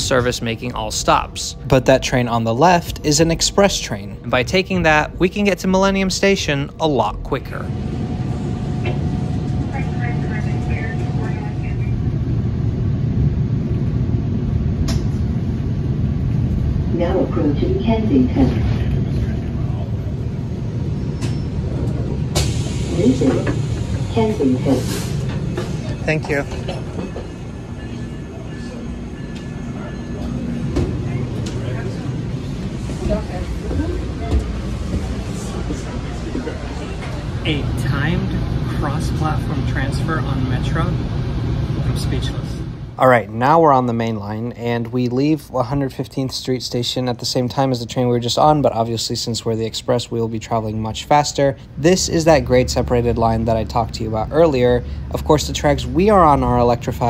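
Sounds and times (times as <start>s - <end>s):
train rumbling on rails: 0.0s - 57.0s
faint voices: 22.8s - 41.0s.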